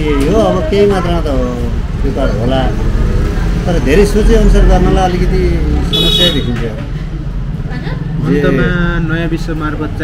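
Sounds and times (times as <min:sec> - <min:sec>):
man speaking: 0:08.3 - 0:10.0.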